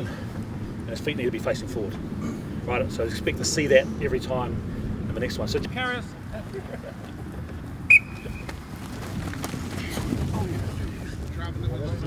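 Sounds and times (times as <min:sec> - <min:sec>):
sports whistle blast: 0:07.9 - 0:08.5.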